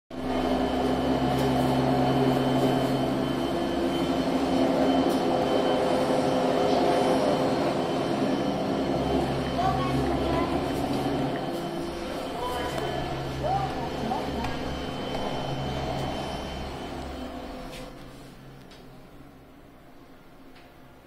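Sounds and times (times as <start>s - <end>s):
machinery hum with steady tones: 0.1s - 21.0s.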